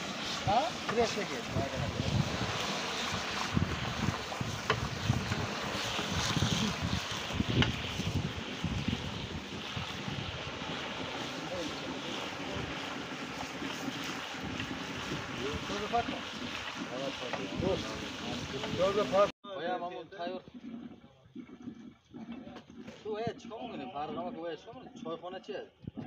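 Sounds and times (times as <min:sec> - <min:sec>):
meat sizzling in oil: 0:00.0 - 0:19.3.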